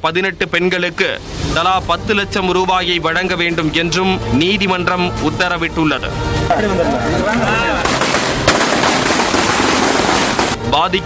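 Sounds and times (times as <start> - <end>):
sharp bang: 7.8 - 10.6
firecrackers cracking: 7.8 - 10.7.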